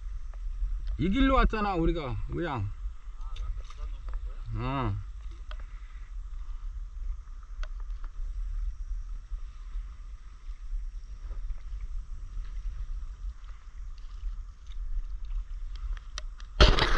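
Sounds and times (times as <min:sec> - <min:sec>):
wind rumble on microphone: 0:00.0 - 0:16.9.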